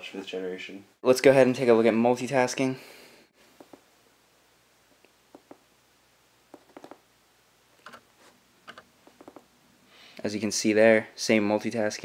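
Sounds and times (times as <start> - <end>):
fingers tapping a tablet: 3.6 - 3.9, 5.3 - 5.6, 6.5 - 7.0, 7.8 - 8.0, 8.7 - 9.5.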